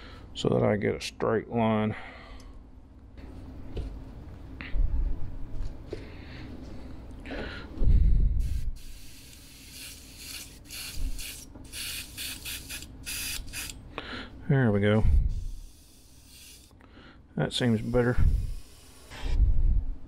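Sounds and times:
airbrush spraying in spurts: 8.4s - 13.8s, 15.2s - 16.8s, 17.6s - 19.4s.

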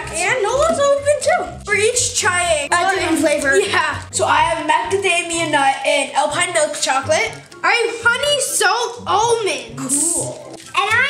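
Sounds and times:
background music: 0.0s - 11.0s
children talking: 0.0s - 11.0s.

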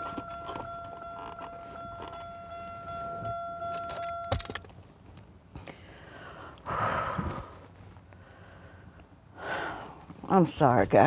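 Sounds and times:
car warning chime: 0.0s - 4.7s
keys jingling: 0.0s - 4.8s.

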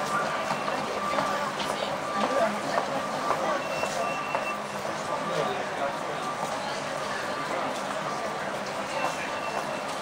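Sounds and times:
passers-by talking: 0.0s - 10.0s
street noise: 0.0s - 10.0s.

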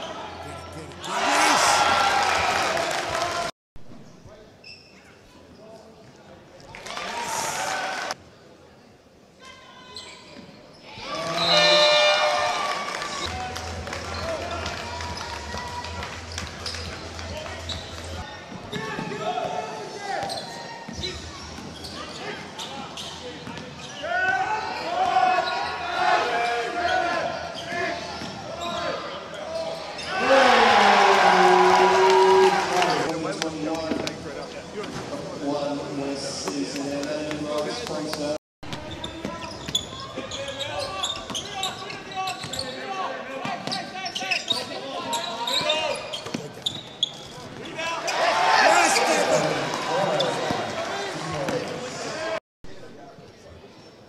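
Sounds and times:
crowd shouting: 1.0s - 3.4s.

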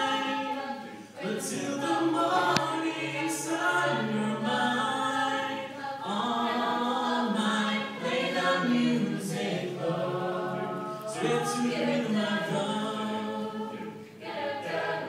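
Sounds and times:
choir singing a cappella: 0.0s - 15.0s.

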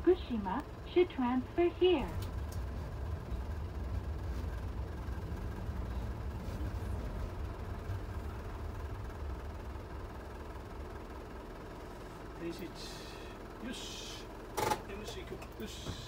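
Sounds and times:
rail vehicle engine rumble: 0.0s - 16.0s.

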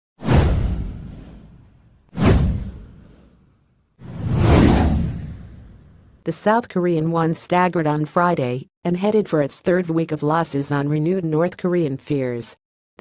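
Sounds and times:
whoosh sound effects: 2.2s - 3.4s, 4.0s - 6.0s.

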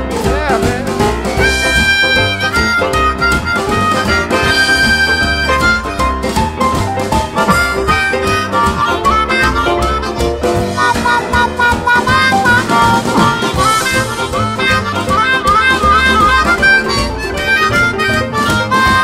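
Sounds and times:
blues band with steady beat: 0.0s - 19.0s
harmonica playing chords: 0.1s - 19.0s.

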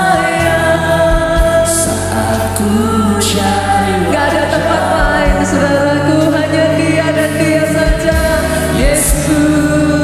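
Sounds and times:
low drum beats: 0.0s - 10.0s
steady bass: 0.0s - 10.0s
woman singing into a microphone: 0.0s - 10.0s.

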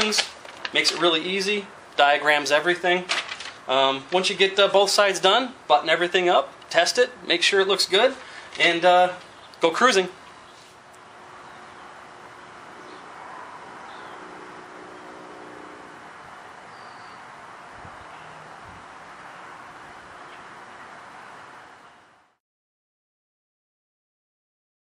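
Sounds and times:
steady background hiss: 0.0s - 22.4s.

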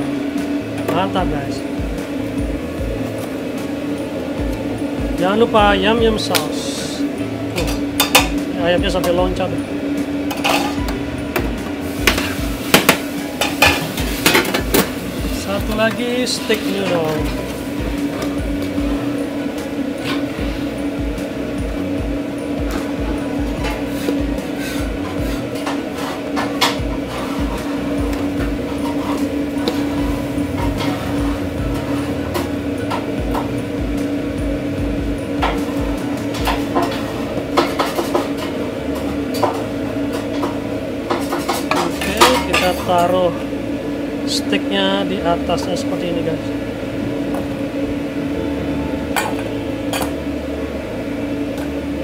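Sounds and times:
steady mechanical hum: 0.0s - 52.0s
metal tongs clinking on steel bowls: 39.3s - 43.2s.

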